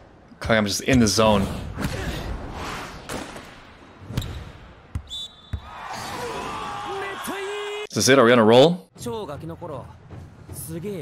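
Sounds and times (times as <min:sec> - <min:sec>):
players shouting: 0:05.5 - 0:07.9.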